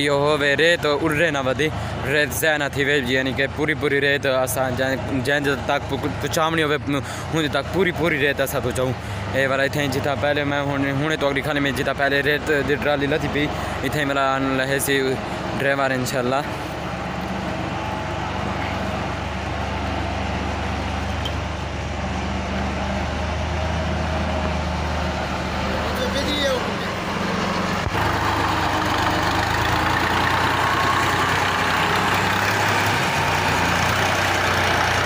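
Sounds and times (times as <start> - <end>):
tractor diesel engine running: 0.0 - 35.0.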